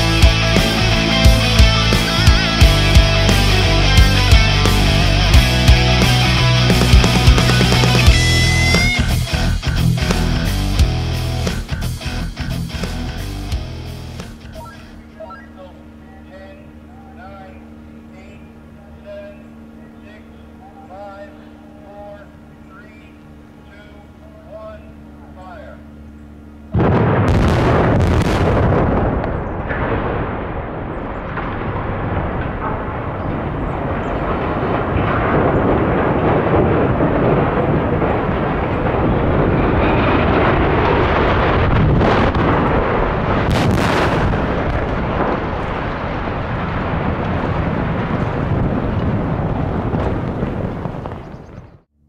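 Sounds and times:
chimneys crashing down rumble: 26.7 - 51.4
loud explosive blasts: 26.7 - 51.8
sharp cracks: 26.8 - 51.7.

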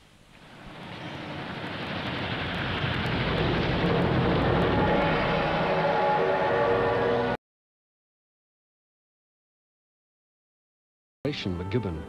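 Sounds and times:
steam locomotive running: 0.0 - 7.4
steady tones: 0.1 - 7.4.

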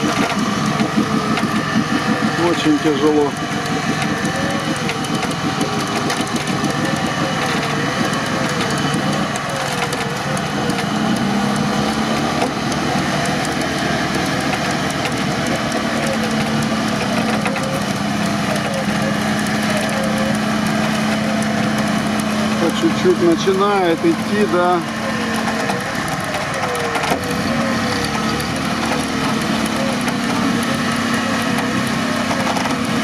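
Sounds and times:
engines running under load: 0.0 - 33.0.

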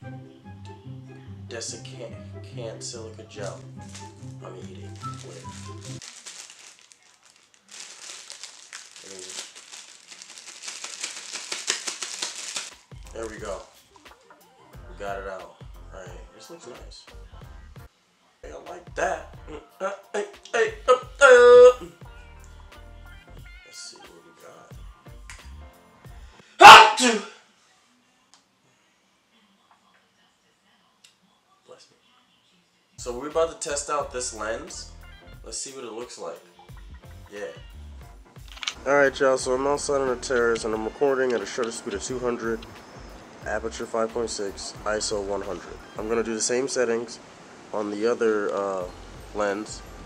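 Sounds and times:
plastic bag crinkling: 3.4 - 13.8
person's short vocal burst: 20.9 - 21.9, 26.6 - 27.4.

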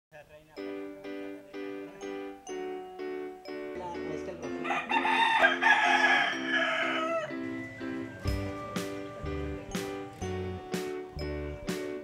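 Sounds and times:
background music: 0.1 - 12.0
rooster crowing: 4.6 - 7.6.

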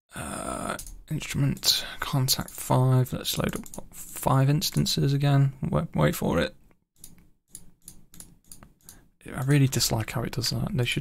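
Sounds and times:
computer mouse clicks: 3.4 - 3.9, 7.0 - 9.0.

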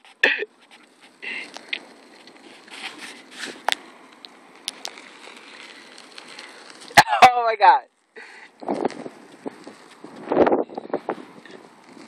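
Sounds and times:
soft rustling: 0.0 - 7.0, 7.9 - 12.0
outdoor background hiss: 0.0 - 12.0.

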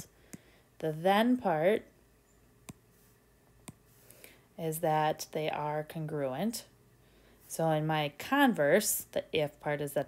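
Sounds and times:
stylus tapping glass screen: 3.6 - 3.8.

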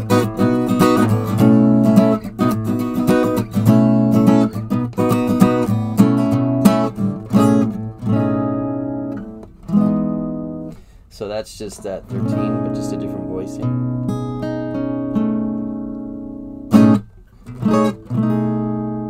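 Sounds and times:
acoustic guitar strumming: 0.0 - 19.0
guitar chords ringing: 0.0 - 19.0.

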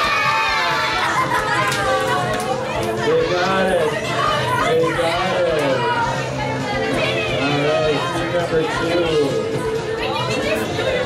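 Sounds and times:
girls cheering and calling out: 3.5 - 4.9.

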